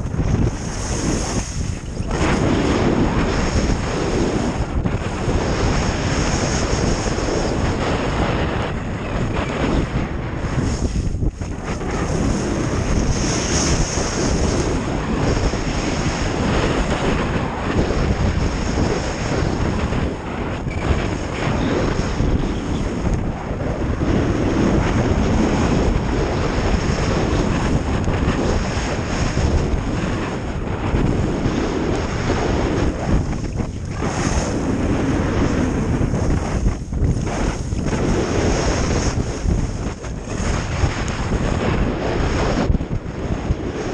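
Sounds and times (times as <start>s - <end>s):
wind rushing over microphone: 0.0s - 43.9s
skis sliding on packed snow: 0.4s - 4.5s.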